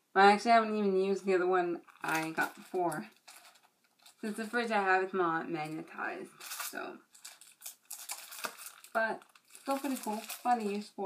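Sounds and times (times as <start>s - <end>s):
packaging rustling and crinkling: 1.8s - 4.6s, 6.3s - 11.0s.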